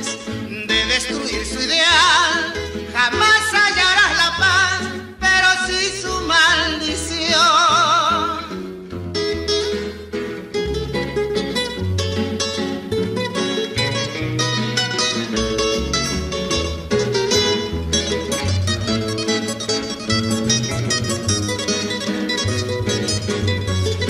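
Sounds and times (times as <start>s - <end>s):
acoustic guitars picking melody: 0.0s - 24.0s
walking bass line: 0.0s - 24.0s.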